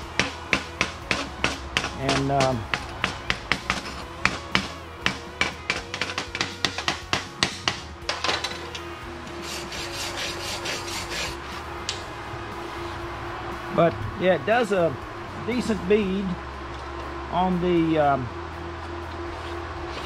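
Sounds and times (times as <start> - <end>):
chipping hammer tapping metal: 0.2 - 7.8
wire brush scrubbing metal: 9.3 - 11.7.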